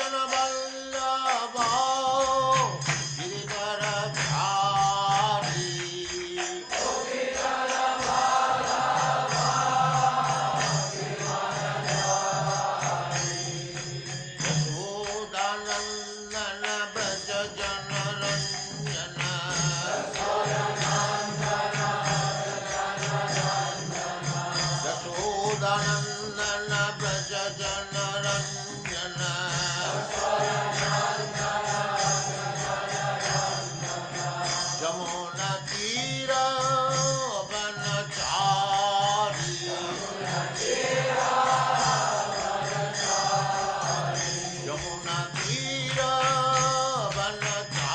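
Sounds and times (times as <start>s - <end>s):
percussion strikes: 0.0s - 47.9s
voices chanting: 6.7s - 14.2s, 19.8s - 25.1s, 29.8s - 34.9s, 39.5s - 46.0s.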